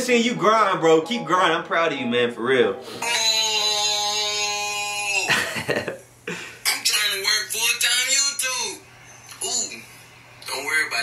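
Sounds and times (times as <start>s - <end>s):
man speaking: 0.0s - 5.3s
man holding a sung note: 2.8s - 5.3s.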